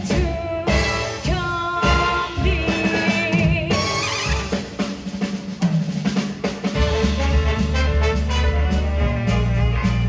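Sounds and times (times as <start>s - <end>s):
drum kit break: 0.0s - 10.0s
swing big band playing: 0.0s - 10.0s.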